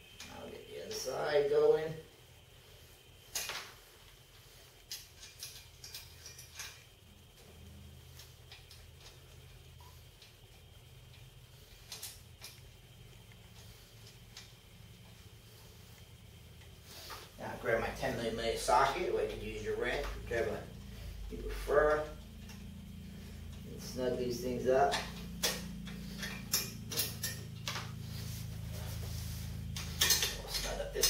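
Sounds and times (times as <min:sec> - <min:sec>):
low room hum: 0:00.0 - 0:31.0
small metal parts clicking: 0:04.8 - 0:07.0, 0:24.9 - 0:27.8, 0:29.8 - 0:31.0.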